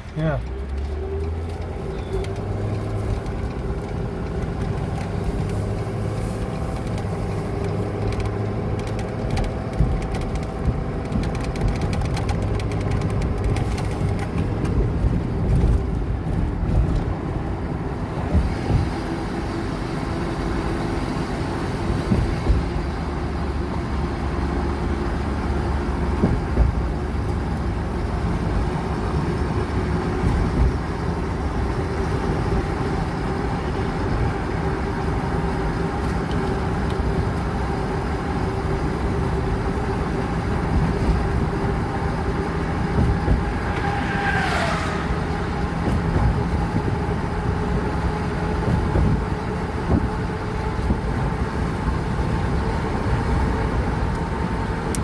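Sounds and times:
engine and tyre rumble: 0:00.0 - 0:55.0
road bumps: 0:00.0 - 0:55.0.

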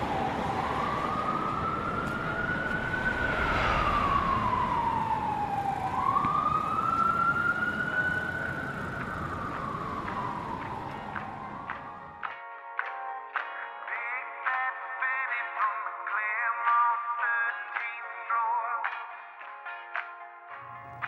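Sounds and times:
emergency siren wailing: 0:00.0 - 0:12.2
low street noise: 0:00.0 - 0:12.9.

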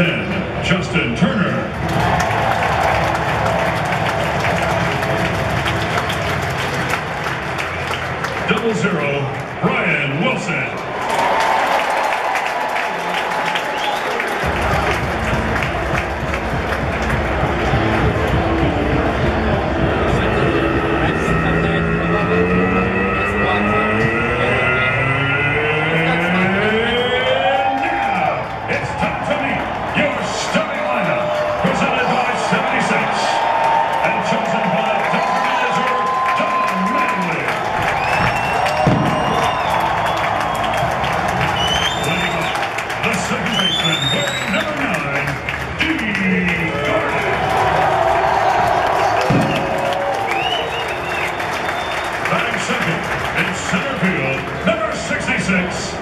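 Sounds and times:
crowd cheering and chattering: 0:00.0 - 0:56.0
music over loudspeakers: 0:14.4 - 0:27.4
stack of rising tones: 0:16.9 - 0:29.9
short rising high notes: 0:19.4 - 0:27.7.

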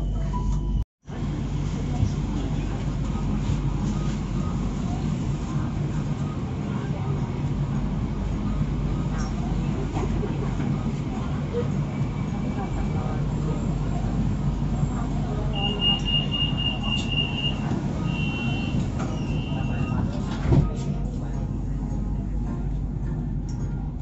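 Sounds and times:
train car low hum: 0:00.0 - 0:24.0
faint voices: 0:01.1 - 0:24.0.

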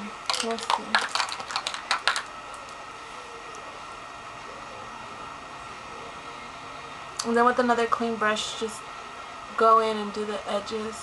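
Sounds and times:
makeup brushes and cases clicking: 0:00.3 - 0:02.3.

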